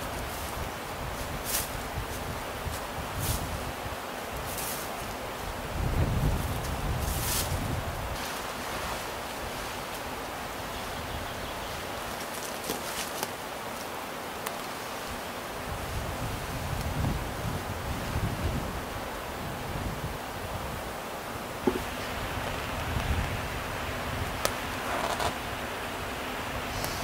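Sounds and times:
wind in forest: 0.0s - 27.0s.

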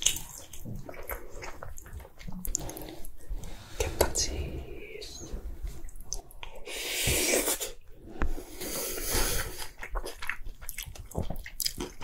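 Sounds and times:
close chewing with wet smacks: 0.0s - 3.3s, 9.5s - 12.0s.

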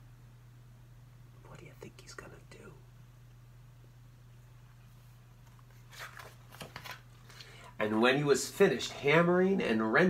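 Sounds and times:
low electrical hum: 0.0s - 10.0s
man whispering: 1.4s - 2.9s.

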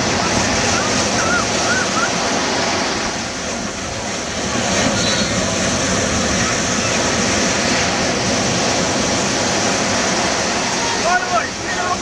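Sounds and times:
ocean surf breaking: 0.0s - 12.0s.

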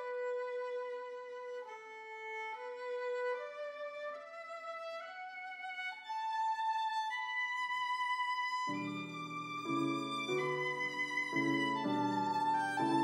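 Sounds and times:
solo violin slow melody: 0.0s - 13.0s.

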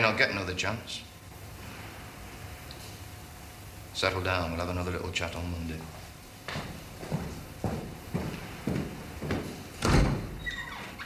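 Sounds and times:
heavy door thud: 8.2s - 10.6s
high door squeak: 9.8s - 11.0s.

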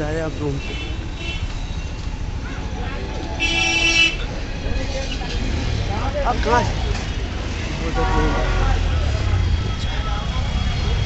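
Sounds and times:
road traffic rumble: 0.0s - 11.0s
vehicle horn honk: 7.9s - 8.9s.

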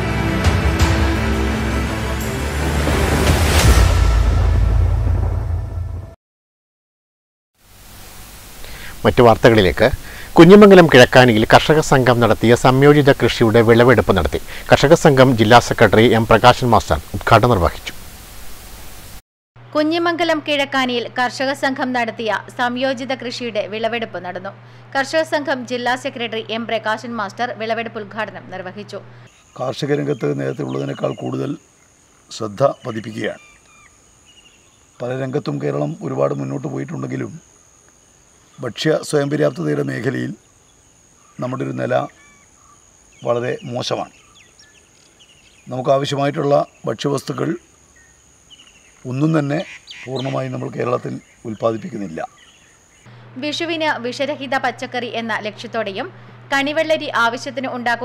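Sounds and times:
faint microphone hiss: 7.6s - 58.0s
faint chirps: 8.0s - 19.1s, 29.1s - 53.4s
man speaking: 8.8s - 18.0s, 29.6s - 31.6s, 32.3s - 33.4s, 35.0s - 37.4s, 38.6s - 40.4s, 41.4s - 42.1s, 43.2s - 44.1s, 45.7s - 47.6s, 49.0s - 52.3s.

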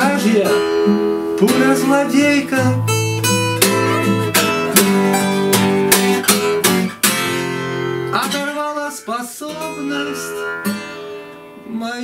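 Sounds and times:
acoustic guitars strumming chords: 0.0s - 12.0s.

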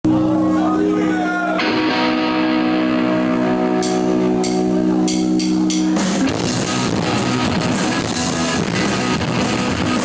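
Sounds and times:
electric guitar chord ringing: 0.1s - 10.0s
cymbal taps: 3.8s - 6.0s.

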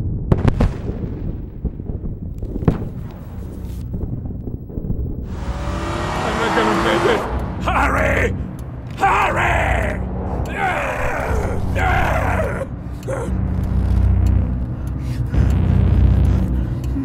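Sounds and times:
low rumble: 0.0s - 17.0s
film score music: 0.6s - 17.0s
man groaning and straining: 9.0s - 13.7s.

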